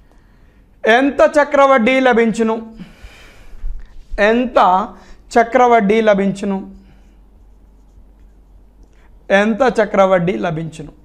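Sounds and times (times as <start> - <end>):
faint marker pen on whiteboard: 6.7 - 9.3.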